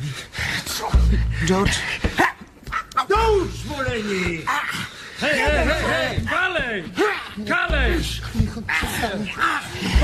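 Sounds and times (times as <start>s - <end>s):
man crying out and whimpering: 4.4s - 10.0s.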